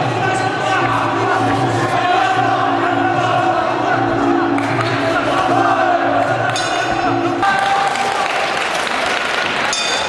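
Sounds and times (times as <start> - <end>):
audience applauding: 7.3 - 10.0.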